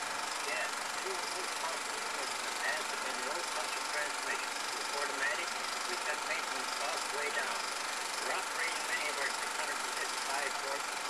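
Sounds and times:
faint high whine: 0.0s - 11.0s
muffled film speech: 0.0s - 11.0s
steady hiss: 0.0s - 11.0s.

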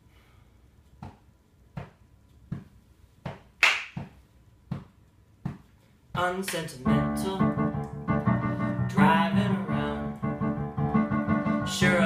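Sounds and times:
piano piece: 6.8s - 12.0s.

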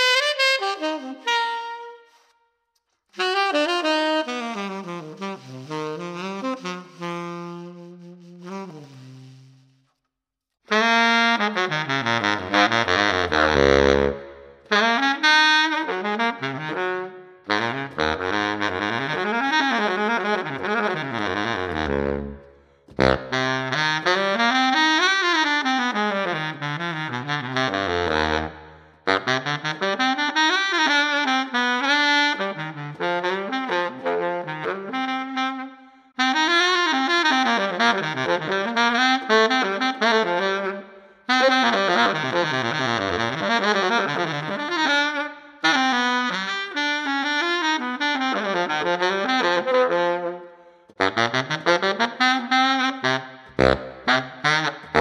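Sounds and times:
baritone saxophone: 0.0s - 2.3s, 3.2s - 9.9s, 10.7s - 55.0s.

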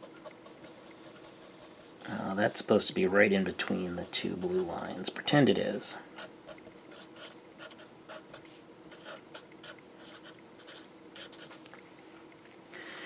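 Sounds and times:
marker pen scratching on paper: 0.0s - 2.1s, 6.2s - 11.6s.

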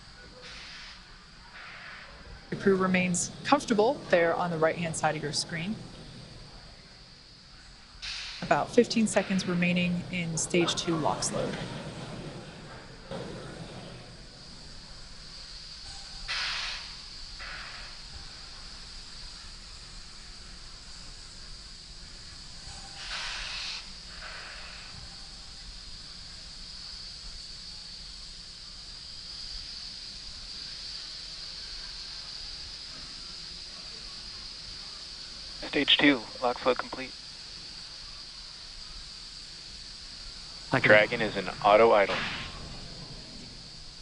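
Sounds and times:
gas venting hisses: 0.0s - 44.0s.

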